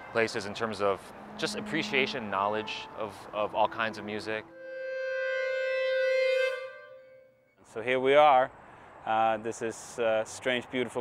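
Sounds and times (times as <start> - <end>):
violin bowed note: 0.6 - 7.6.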